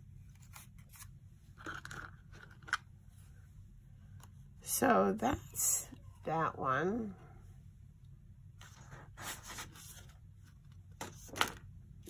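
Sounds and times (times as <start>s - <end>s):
cardstock rustling and scraping: 8.6s - 11.6s.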